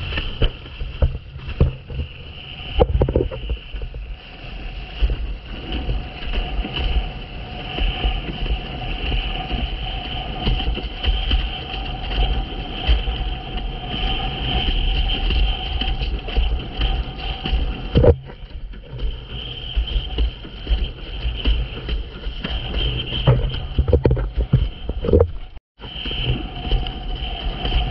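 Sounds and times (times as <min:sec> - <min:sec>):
water rushing under board: 0:00.0 - 0:27.9
wind buffeting microphone: 0:00.0 - 0:27.9.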